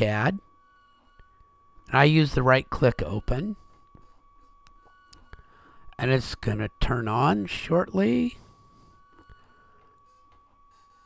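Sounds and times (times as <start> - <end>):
faint steady whine: 0.0 - 11.0.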